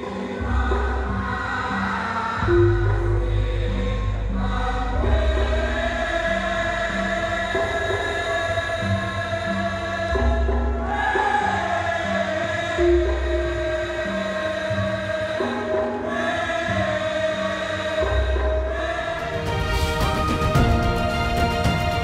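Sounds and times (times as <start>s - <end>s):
chorus singing long notes: 0.0s - 22.0s
gamelan music: 0.0s - 22.0s
theme tune with ticking beat: 19.2s - 22.0s.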